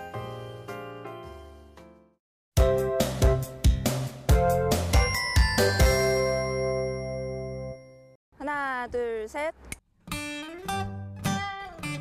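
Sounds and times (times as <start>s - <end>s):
bell-like jingle chord ringing: 5.0s - 8.2s.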